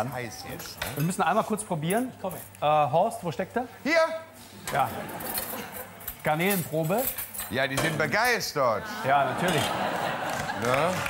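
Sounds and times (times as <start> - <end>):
background chatter: 3.8 - 11.0
plates and cutlery clinking: 4.6 - 8.4.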